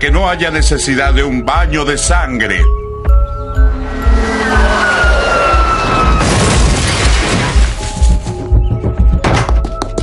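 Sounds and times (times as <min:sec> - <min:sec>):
background music with steady beat: 0:00.0 - 0:04.2, 0:07.8 - 0:10.0.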